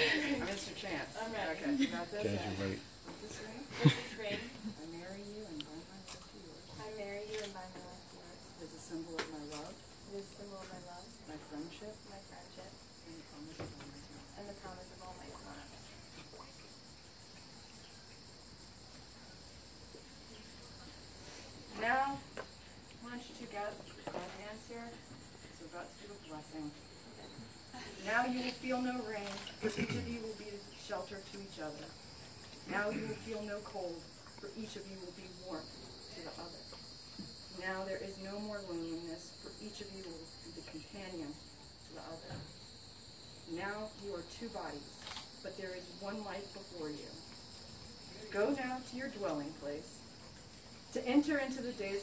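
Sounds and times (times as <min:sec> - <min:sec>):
insects chirping: 0:00.0 - 0:52.0.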